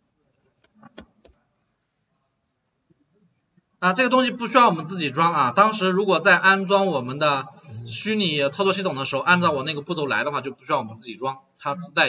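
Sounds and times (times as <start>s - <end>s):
man speaking: 3.8s - 12.0s.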